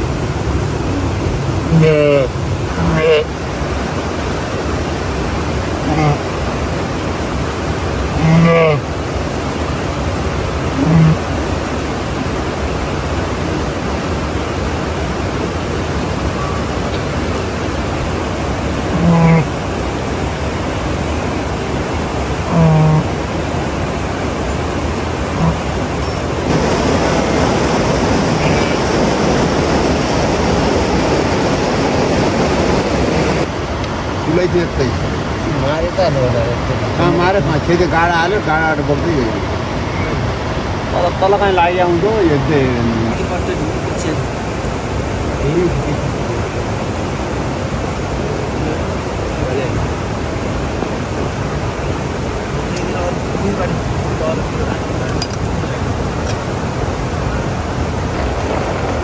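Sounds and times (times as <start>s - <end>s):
steady rushing noise: 0.0s - 59.0s.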